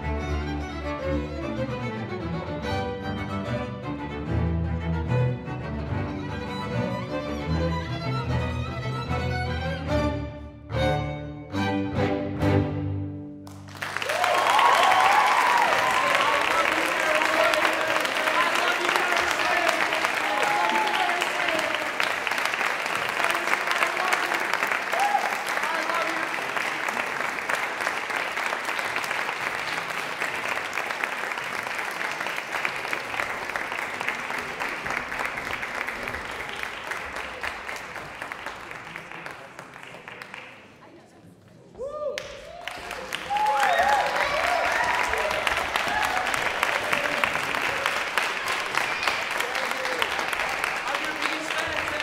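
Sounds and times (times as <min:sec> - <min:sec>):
audience applause: 0:13.4 - 0:41.0, 0:42.1 - 0:52.0
cheering voices: 0:13.8 - 0:38.0, 0:41.8 - 0:52.0.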